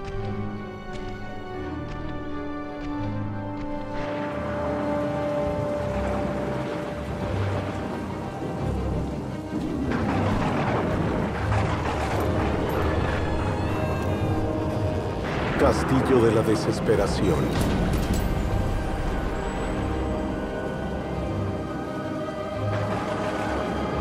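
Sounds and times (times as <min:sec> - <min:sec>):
film score music: 0:00.0 - 0:24.0
heavy rain: 0:00.0 - 0:24.0
low thunder rumble: 0:04.0 - 0:24.0.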